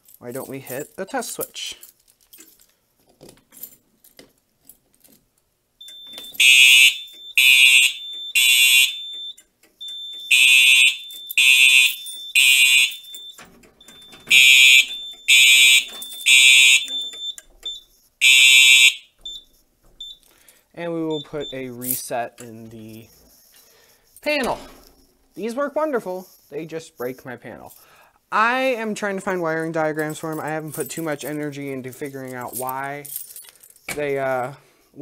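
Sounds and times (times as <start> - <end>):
fire alarm horn blasts: 5.8 - 19.4.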